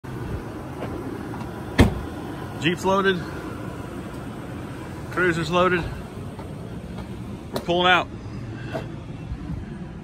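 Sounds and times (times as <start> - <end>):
car door slamming: 0.8 - 2.1.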